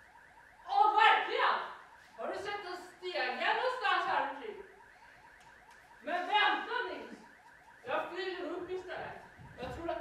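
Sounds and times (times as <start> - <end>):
electronic rising chirp alarm: 0.0 - 10.0.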